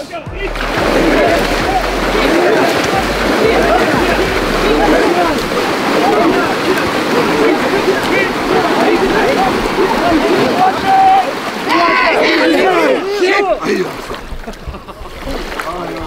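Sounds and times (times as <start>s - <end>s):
crowd shouting together: 0.0s - 14.0s
water splashing: 0.0s - 16.0s.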